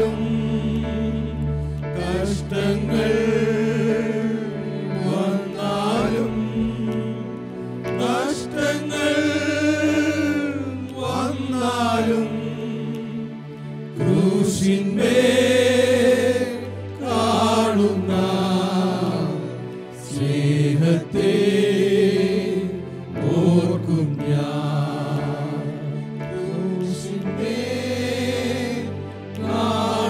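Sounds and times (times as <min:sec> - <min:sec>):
keyboard sustained low notes: 0:00.0 - 0:30.0
men singing a hymn: 0:00.0 - 0:30.0.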